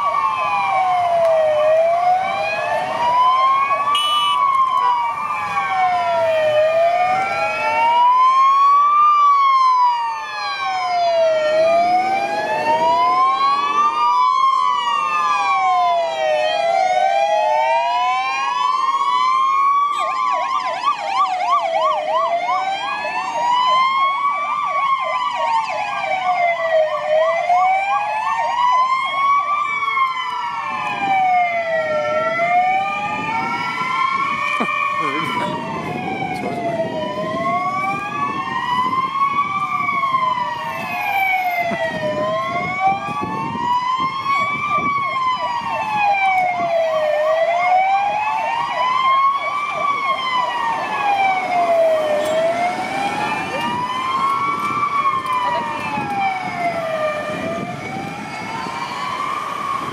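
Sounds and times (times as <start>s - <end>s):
police sirens wailing: 0.0s - 59.9s
siren fast yelp: 0.0s - 59.9s.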